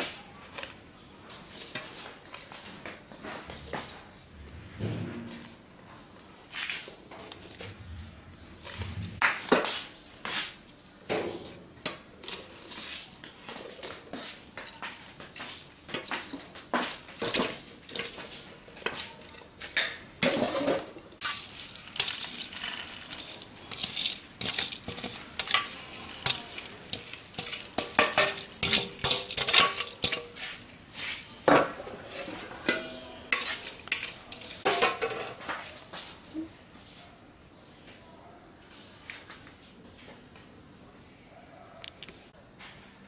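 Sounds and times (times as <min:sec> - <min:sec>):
tongs scraping metal colander: 0:11.8 - 0:35.4.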